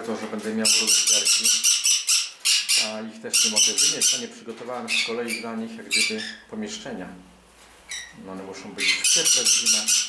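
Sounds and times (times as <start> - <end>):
conures screeching: 0.6 - 4.3, 4.9 - 6.5, 7.9 - 8.2, 8.8 - 10.0.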